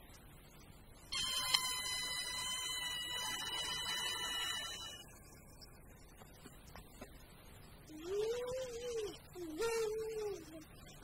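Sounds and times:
high buzzer-like tone: 1.1s - 5.6s.

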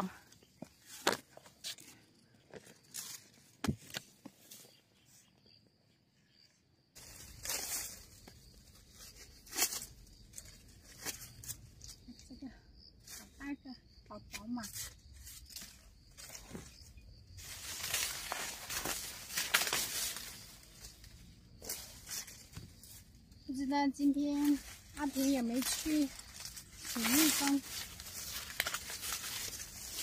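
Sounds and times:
dry corn leaves rustling: 2.5s - 4.7s, 7.0s - 12.4s, 14.7s - 30.0s
corn ears snapping off: 17.8s - 20.3s.

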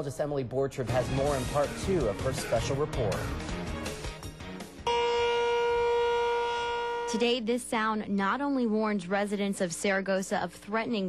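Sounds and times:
tornado warning siren: 4.9s - 7.4s.

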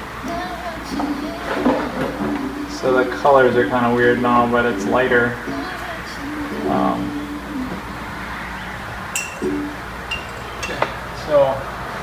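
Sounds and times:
high-pitched clink: 9.2s - 10.9s.

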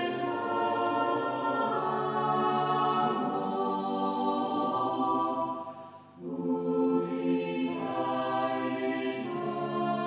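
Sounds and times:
choir singing slow chords: 0.0s - 10.0s.

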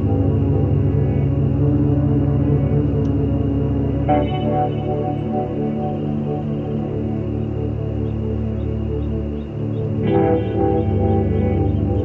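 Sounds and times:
slow ambient music: 0.0s - 12.0s.

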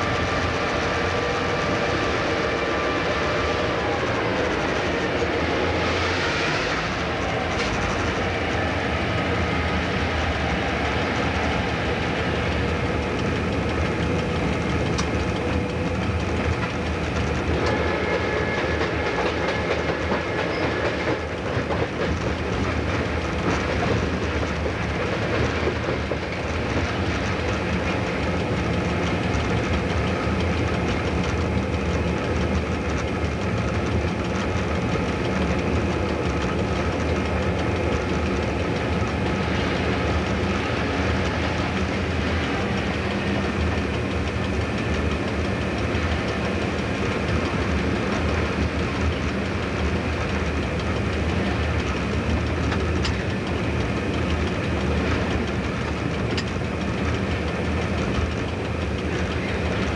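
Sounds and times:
locomotive diesel engine running: 0.0s - 59.9s
wheels clattering on track: 0.0s - 59.9s.

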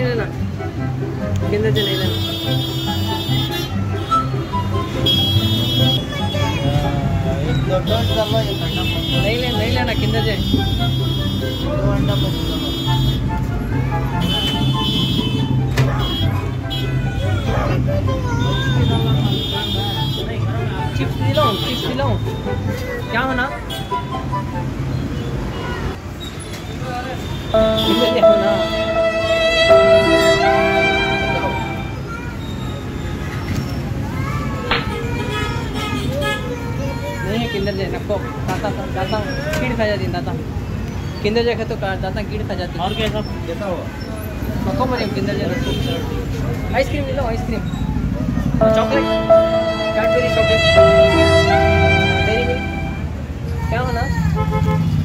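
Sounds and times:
low rumble of street traffic: 0.0s - 55.0s
car horns: 1.7s - 6.6s, 7.7s - 13.4s, 14.1s - 17.6s, 18.6s - 24.2s, 27.3s - 32.1s, 48.6s - 53.4s
voices: 27.6s - 32.6s, 47.5s - 53.0s.

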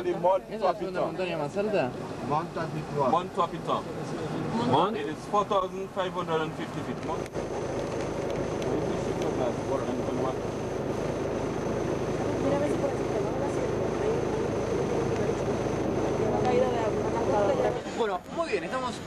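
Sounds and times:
indistinct talking: 0.0s - 19.0s
vehicle driving on a road: 0.9s - 19.0s
steady drone: 1.9s - 18.6s.

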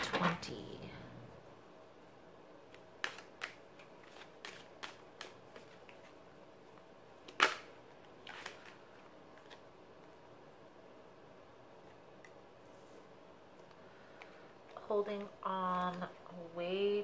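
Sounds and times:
card snap: 2.7s - 3.6s, 7.2s - 8.8s
cards being shuffled: 2.7s - 10.2s.

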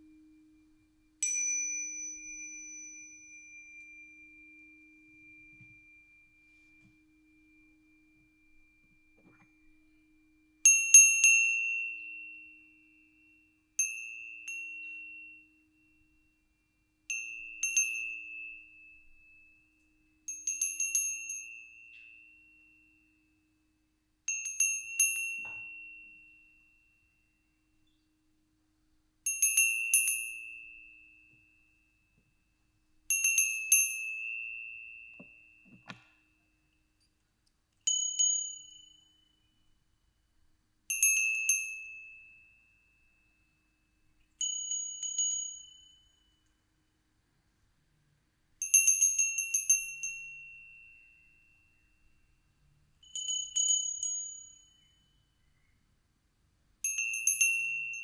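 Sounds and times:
small hand bells ringing: 1.2s - 9.8s, 10.6s - 23.5s, 24.3s - 27.6s, 29.3s - 32.2s, 37.8s - 39.8s, 40.9s - 46.6s, 48.6s - 55.8s, 56.8s - 58.0s.

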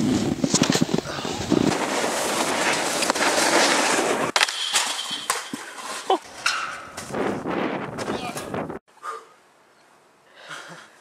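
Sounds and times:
body sliding on snow: 0.0s - 4.3s.

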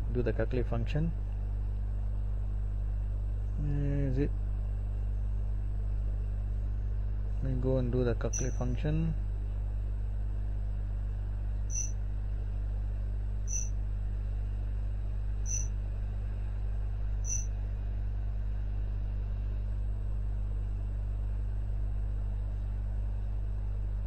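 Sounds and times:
low electrical hum: 0.0s - 24.0s
faint high blips: 8.4s - 8.6s, 11.7s - 11.9s.

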